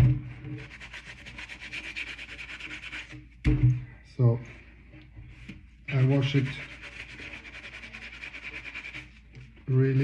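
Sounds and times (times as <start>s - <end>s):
sponge scrubbing a sneaker: 0.4s - 3.2s, 5.9s - 10.0s.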